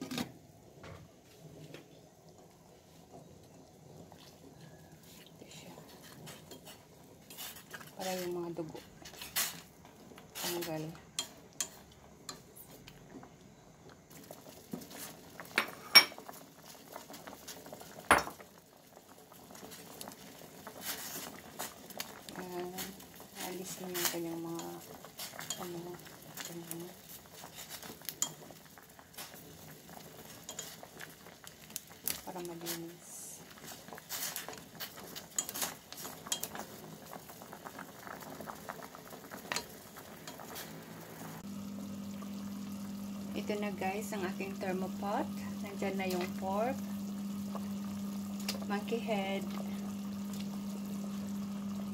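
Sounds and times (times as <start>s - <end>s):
water boiling in a pot: 0.0s - 51.9s.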